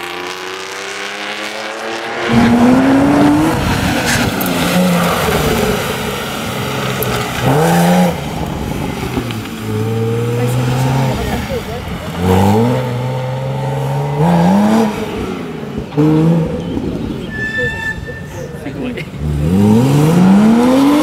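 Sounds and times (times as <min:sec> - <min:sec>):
car engine revving hard: 0:00.0 - 0:16.8, 0:19.2 - 0:21.0.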